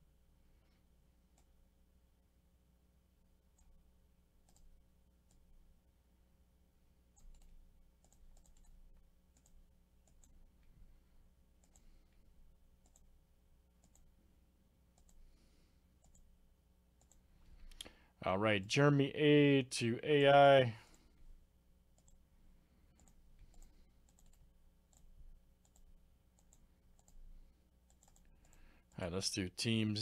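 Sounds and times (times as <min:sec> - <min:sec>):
computer mouse clicks: 0:04.4 - 0:05.4, 0:07.2 - 0:10.8, 0:11.6 - 0:12.2, 0:12.8 - 0:13.2, 0:13.8 - 0:14.1, 0:15.0 - 0:15.2, 0:16.0 - 0:16.3, 0:17.0 - 0:18.0, 0:22.0 - 0:22.2, 0:23.0 - 0:28.7.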